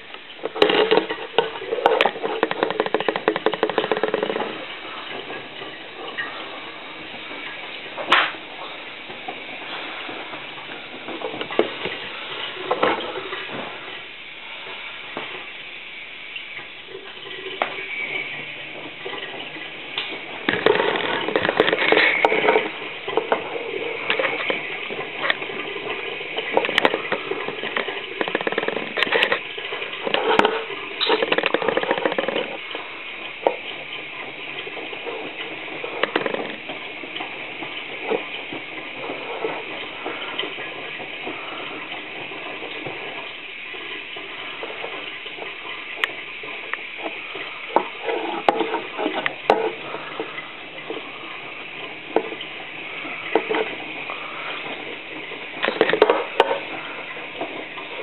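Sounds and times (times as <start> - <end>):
washing machine drum tumbling: 0.0 - 14.1
water sloshing and splashing: 0.0 - 58.0.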